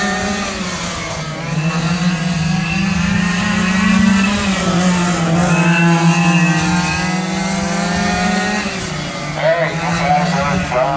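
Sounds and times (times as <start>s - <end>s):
small high-revving engines: 0.0s - 10.9s.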